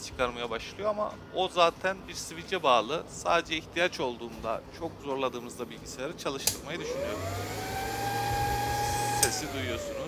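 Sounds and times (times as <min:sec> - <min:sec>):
other fans running: 0:05.8 - 0:10.0
cooling fan whining: 0:05.9 - 0:10.0.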